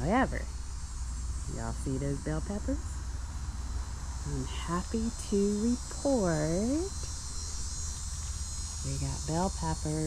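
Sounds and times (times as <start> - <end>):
high-pitched insect chorus: 0.0 - 10.0
low steady rumble: 0.0 - 10.0.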